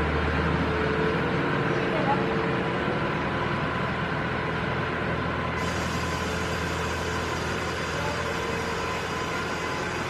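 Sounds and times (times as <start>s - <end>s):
outdoor background din: 5.5s - 10.0s.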